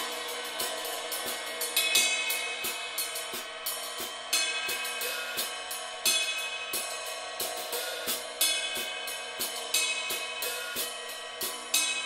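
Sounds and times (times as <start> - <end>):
cymbal accents: 0.0 - 12.0
drum kit steady groove: 0.0 - 12.0
ridden cymbal wash: 0.0 - 12.0.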